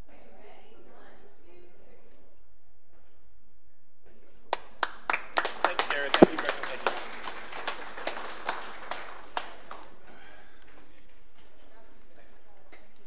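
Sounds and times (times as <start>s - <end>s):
small audience applause: 4.5s - 10.4s.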